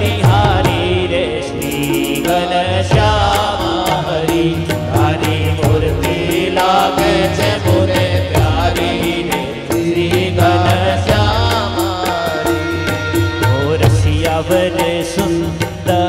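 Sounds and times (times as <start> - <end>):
percussion beat: 0.0 - 16.0.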